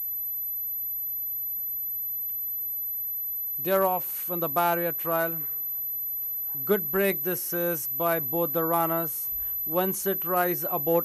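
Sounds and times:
high-pitched electronic whine: 0.0s - 11.0s.

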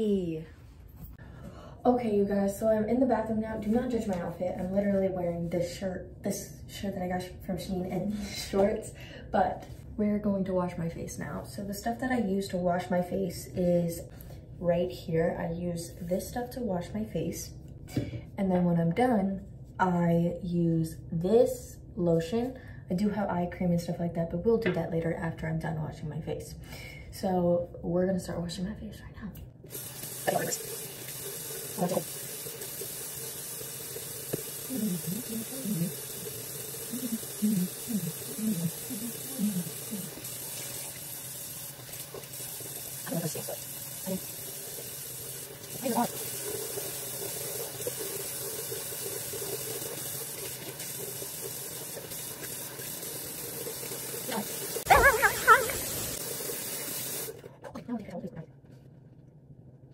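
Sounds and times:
sink tap running: 29.7s - 57.4s.

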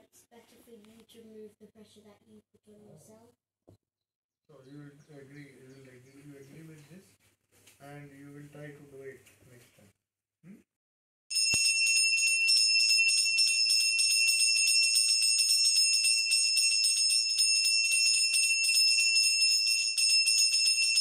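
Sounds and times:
hand bell rung rapidly: 11.3s - 21.0s.

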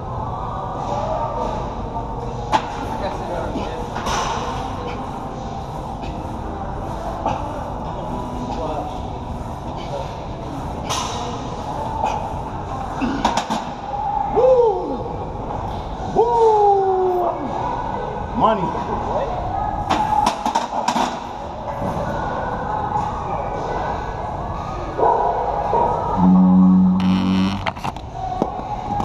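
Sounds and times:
room hum: 0.0s - 29.0s.

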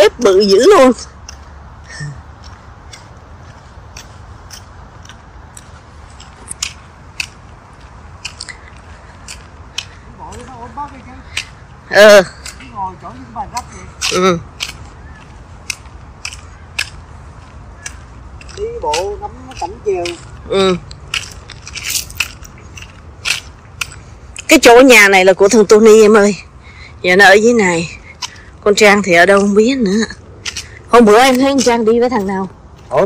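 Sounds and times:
footsteps on gritty pavement: 0.0s - 33.0s
steady low rumble: 0.0s - 33.0s.

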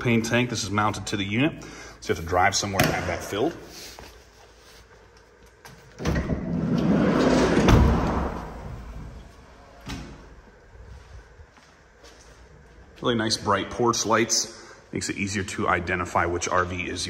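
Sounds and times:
sliding van door rolling shut: 6.0s - 10.3s.

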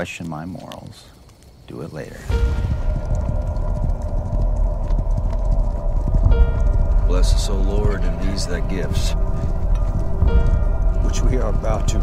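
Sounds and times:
horse hooves clip-clopping: 0.0s - 12.0s
music score: 2.3s - 12.0s.

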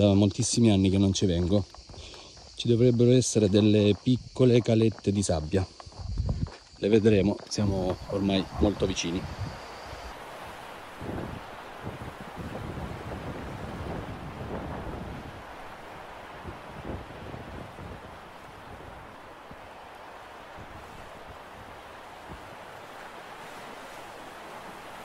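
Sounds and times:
wind buffeting microphone: 0.9s - 25.0s.

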